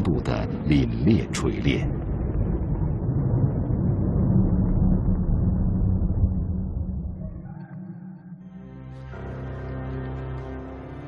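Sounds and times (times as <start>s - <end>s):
deep rumbling drone: 0.0s - 10.8s.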